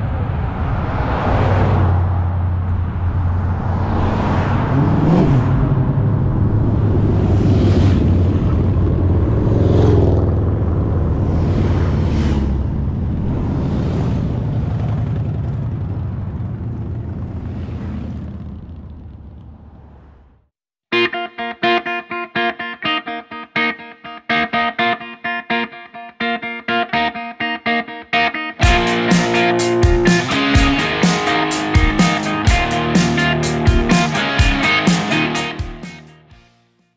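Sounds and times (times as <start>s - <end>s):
motorcycles passing: 0.0s - 20.3s, 28.6s - 36.1s
guitar music with picked notes: 20.9s - 36.5s.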